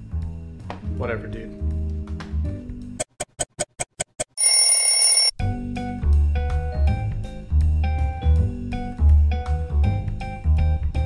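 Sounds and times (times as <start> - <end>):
alarm bell ringing: 4.4 - 5.3.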